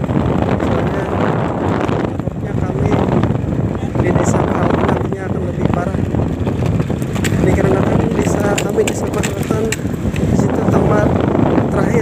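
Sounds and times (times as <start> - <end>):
scooter engine running: 0.0 - 10.9
wind buffeting microphone: 0.0 - 12.0.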